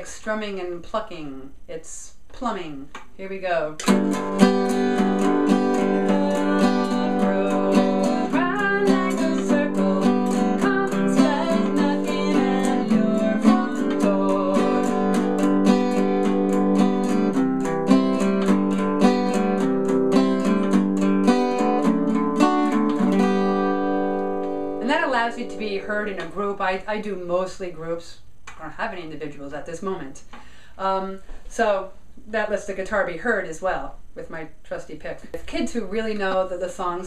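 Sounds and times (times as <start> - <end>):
acoustic guitar picking: 3.8 - 26.5.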